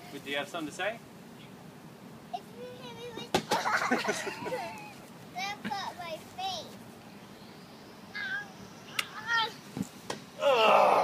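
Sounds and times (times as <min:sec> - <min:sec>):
girl squealing: 0:10.4 - 0:11.0.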